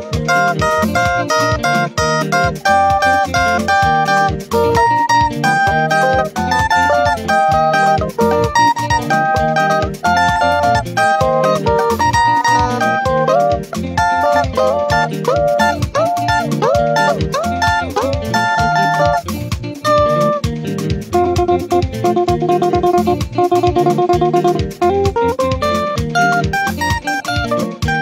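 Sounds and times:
electric guitar lead line: 0.0 - 28.0.

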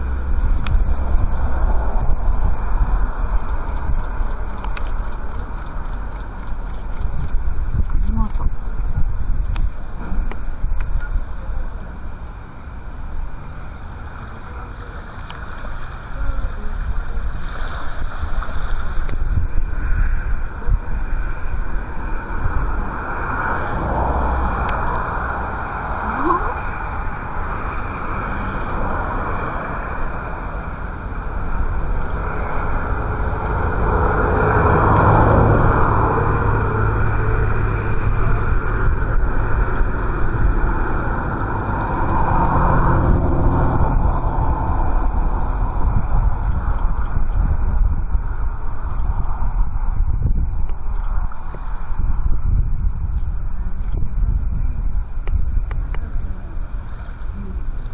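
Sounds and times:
surf hiss: 0.0 - 49.8, 50.8 - 52.4, 53.4 - 57.9
wind buffeting microphone: 0.0 - 57.9.

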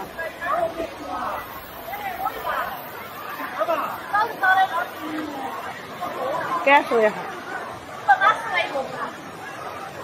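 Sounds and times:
people chattering: 0.0 - 10.0
steady background noise: 0.0 - 10.0.

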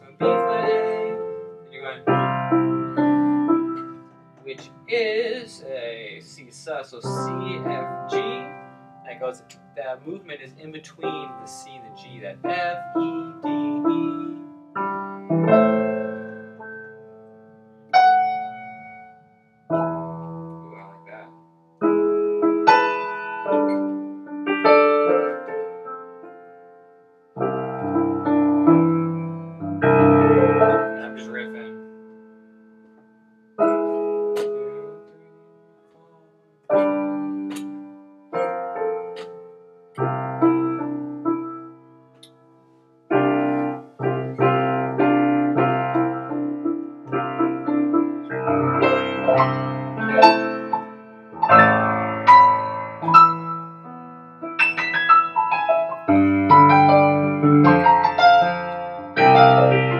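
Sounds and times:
piano chords: 0.0 - 59.9.

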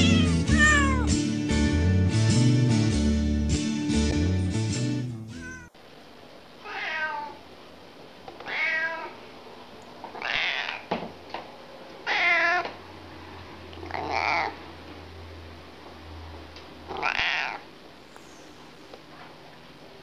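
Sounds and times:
cat meowing: 0.0 - 1.2, 5.3 - 5.8, 6.6 - 7.4, 8.4 - 9.2, 10.1 - 10.9, 12.0 - 12.8, 13.8 - 14.6, 16.9 - 17.7.

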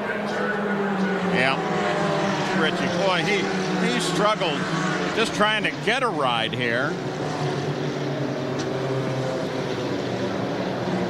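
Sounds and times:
engines droning: 0.0 - 11.0.

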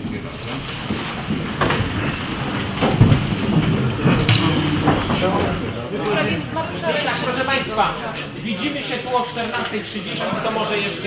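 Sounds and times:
shuffling and chair movement: 0.0 - 8.5
knocks: 0.9 - 5.6.

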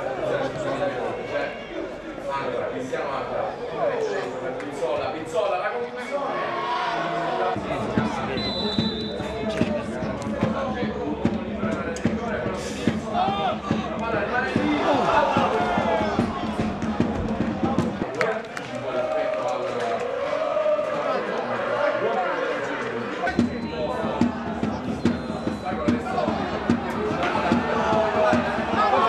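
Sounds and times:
voices: 0.0 - 29.0
music: 7.6 - 18.1, 23.3 - 29.0.

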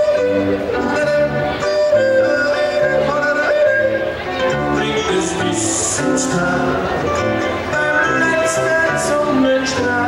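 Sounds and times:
man yodeling: 0.0 - 10.0.

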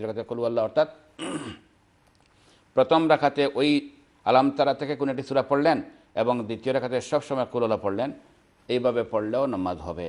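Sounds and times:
man clearing his throat: 1.2 - 1.7
man speaking: 2.8 - 10.0.

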